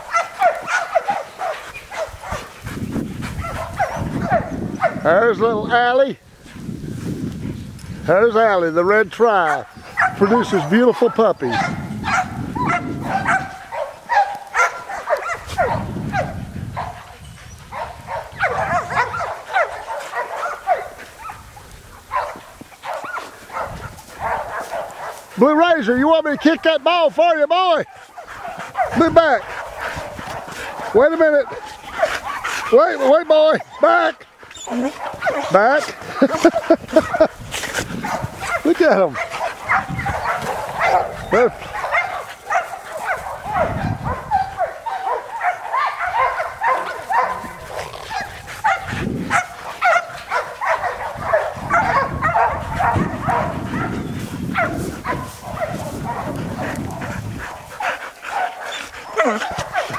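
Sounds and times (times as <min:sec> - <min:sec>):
dogs barking and yipping: 0:00.0 - 0:06.0, 0:07.5 - 0:59.9.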